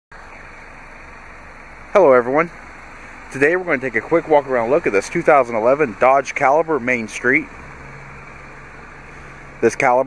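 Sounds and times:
man speaking: 2.0 - 2.5, 3.3 - 7.5, 9.6 - 10.0.

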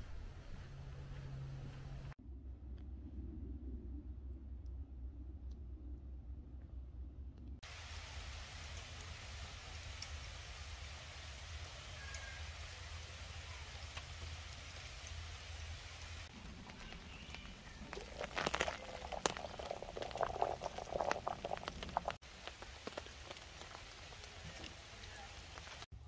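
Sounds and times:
steady rain falling: 7.6 - 25.9
water boiling in a pot: 7.6 - 25.9.

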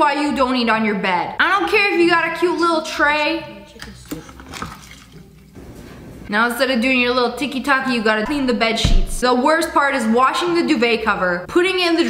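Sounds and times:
liquid splashing: 4.0 - 5.6.

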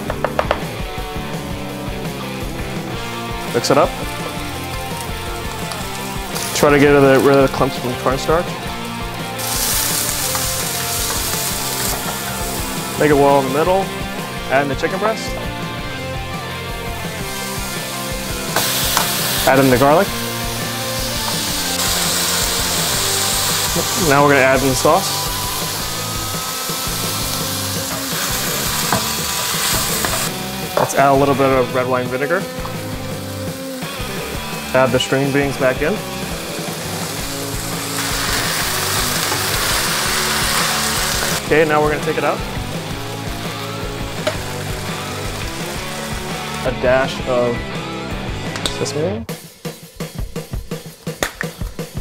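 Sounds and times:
background music: 0.0 - 52.0
chicken sizzling in hot oil: 1.4 - 14.3, 16.7 - 47.1.

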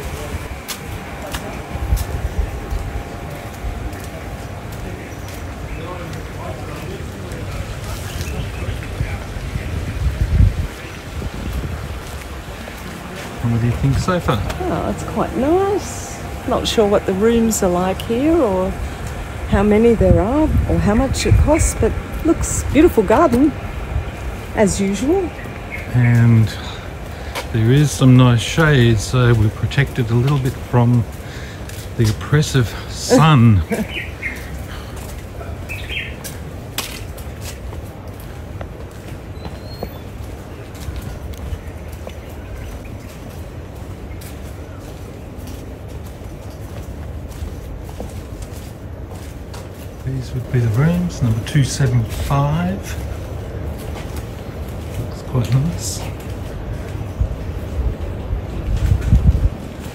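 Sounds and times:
low steady rumble: 0.0 - 39.4
wind buffeting microphone: 0.0 - 59.9
bird chirping: 39.4 - 40.2.

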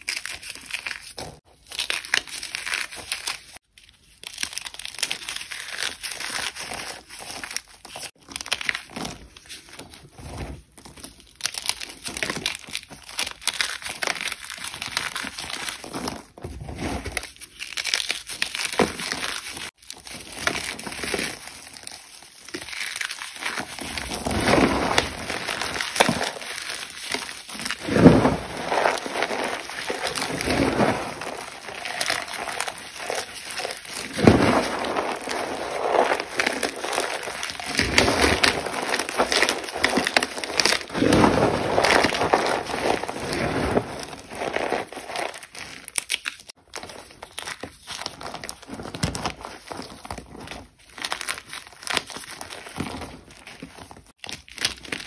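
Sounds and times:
cornstarch chunks crunching: 11.2 - 55.0.

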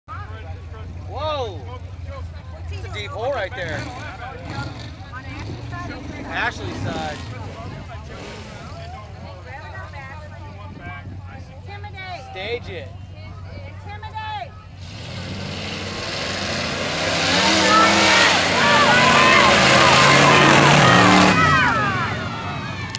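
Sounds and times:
truck engines idling: 0.1 - 22.9
spectators' voices: 15.8 - 22.9.

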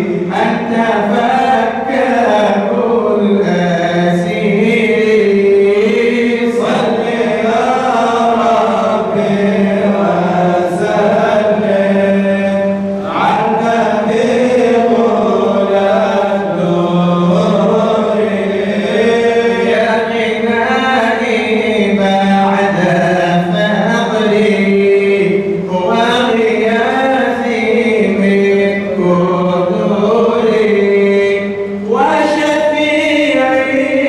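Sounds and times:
man chanting into a microphone: 0.0 - 34.0.

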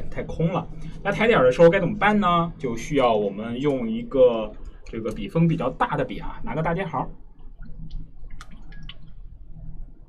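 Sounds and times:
low steady hum: 0.0 - 10.0
water drips and light splashes: 7.4 - 9.5.

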